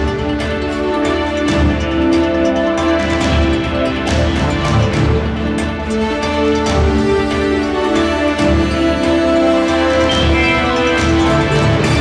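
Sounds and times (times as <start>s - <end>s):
news theme music with chords: 0.0s - 12.0s.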